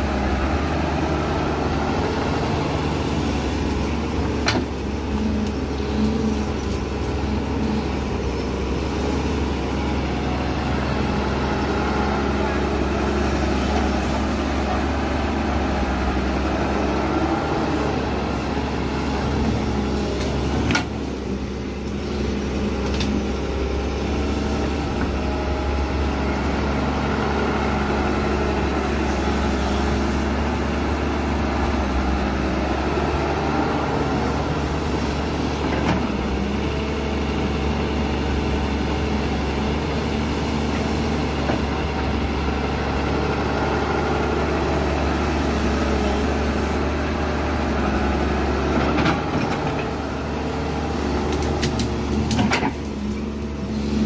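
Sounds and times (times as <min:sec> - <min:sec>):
excavator diesel engine running: 0:00.0 - 0:54.0.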